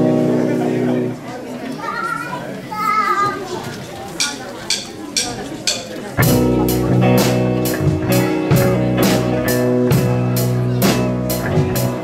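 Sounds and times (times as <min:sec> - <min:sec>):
children's voices: 0:00.0 - 0:09.1
crowd chatter: 0:00.0 - 0:12.0.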